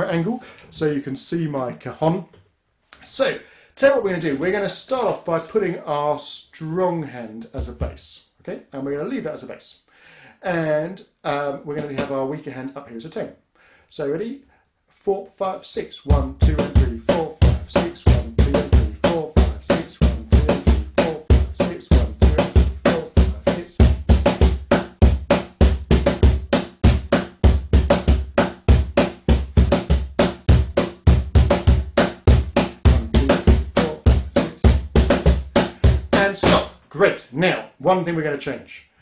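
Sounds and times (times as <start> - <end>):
cajon played with hands: 11.8 - 12.1, 16.4 - 36.7.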